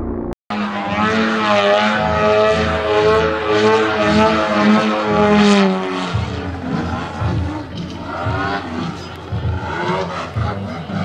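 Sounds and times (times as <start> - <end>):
model plane engine drone: 0.5 - 11.0.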